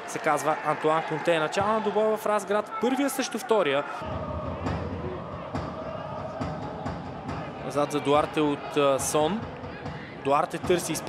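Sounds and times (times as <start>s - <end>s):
crowd rumble: 4.0s - 11.0s.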